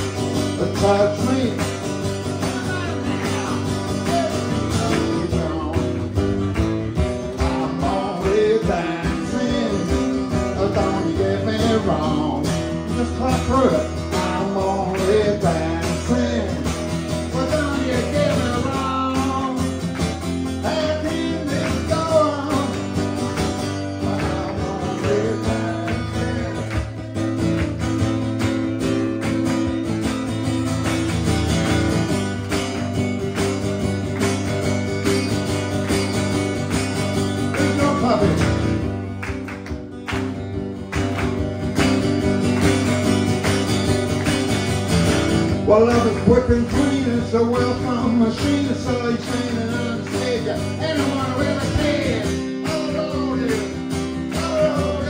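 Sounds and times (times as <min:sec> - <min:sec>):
acoustic guitar strumming: 0:00.0 - 0:55.0
man singing: 0:00.4 - 0:06.2, 0:07.2 - 0:27.4, 0:37.4 - 0:38.8, 0:45.5 - 0:55.0.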